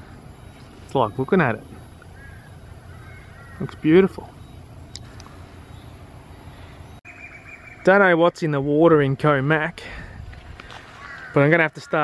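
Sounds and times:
faint high whine: 0:00.0 - 0:08.7
man speaking: 0:00.9 - 0:01.8, 0:03.6 - 0:04.4, 0:07.8 - 0:10.0.

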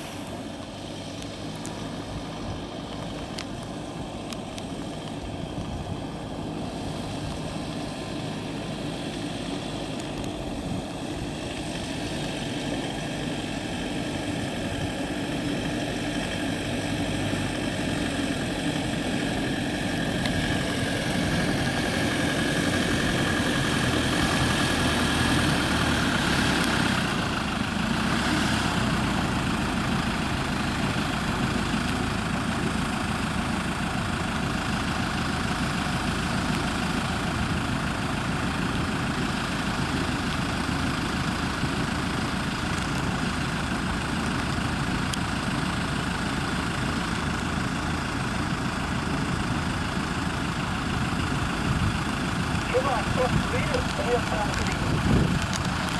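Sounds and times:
off-road vehicle engines: 0:00.0 - 0:55.9.

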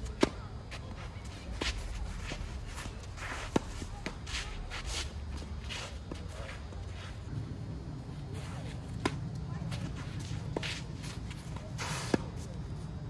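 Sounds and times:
footsteps on clay court: 0:00.0 - 0:13.0
shoes scuffing and sliding on clay: 0:00.0 - 0:13.0.

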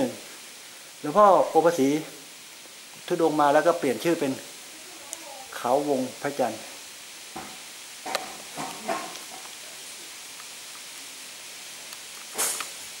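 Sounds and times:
steady background hiss: 0:00.0 - 0:13.0
loud burst of noise: 0:11.2 - 0:13.0.

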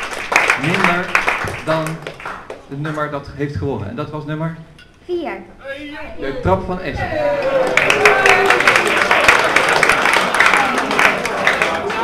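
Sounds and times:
audience clapping: 0:00.0 - 0:03.2, 0:07.3 - 0:12.0.

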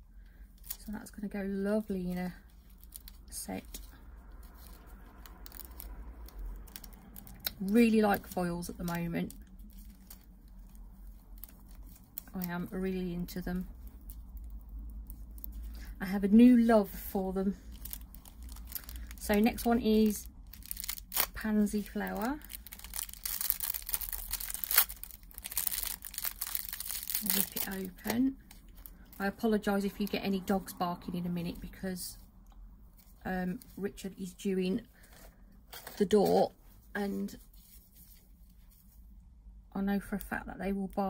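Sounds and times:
plastic packet crinkling and tearing: 0:00.5 - 0:01.1, 0:02.3 - 0:16.0, 0:16.8 - 0:29.4
soft handling noise: 0:01.8 - 0:30.0, 0:31.9 - 0:39.2.

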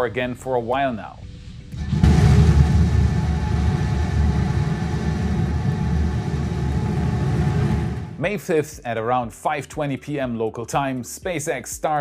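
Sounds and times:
rocket engines rumbling: 0:01.8 - 0:08.2.

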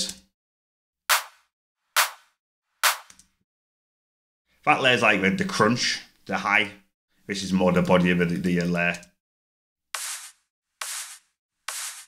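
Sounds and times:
electronic clap sample: 0:01.1 - 0:03.1.

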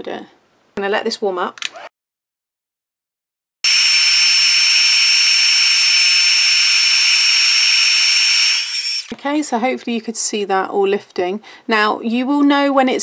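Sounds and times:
heat tool blowing hot air: 0:03.7 - 0:09.2.

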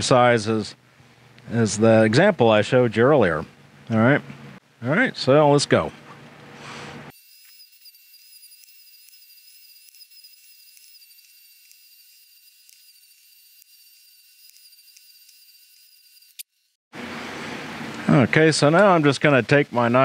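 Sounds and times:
rotary tool high-pitched whine: 0:07.1 - 0:16.8.

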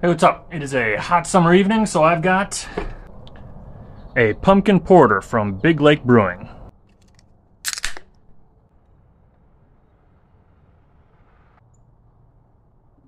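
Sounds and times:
beer can opening crack and hiss: 0:07.7 - 0:08.1.

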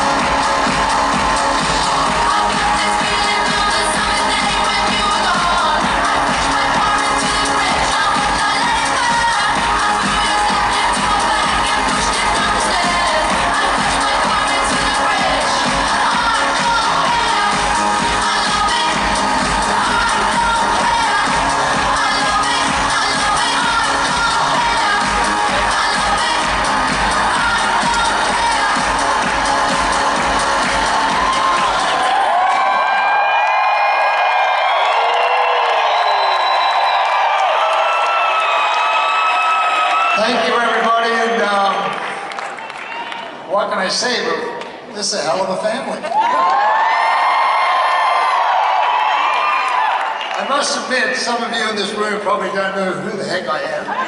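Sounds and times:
crowd cheering and whooping: 0:00.0 - 0:43.5, 0:46.0 - 0:51.2, 0:53.8 - 0:54.0
loud arena music with beat: 0:00.0 - 0:54.0.

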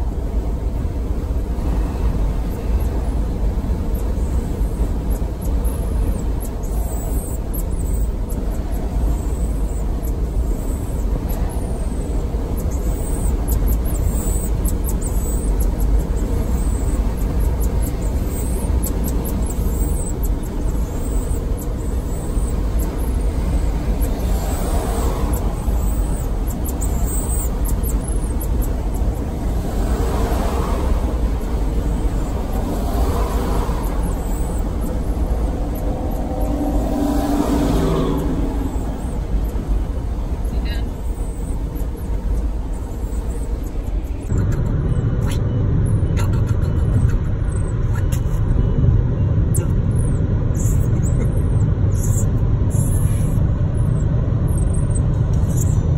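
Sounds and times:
car interior road rumble: 0:00.0 - 0:55.9
truck cab road and engine drone: 0:00.0 - 0:55.9.

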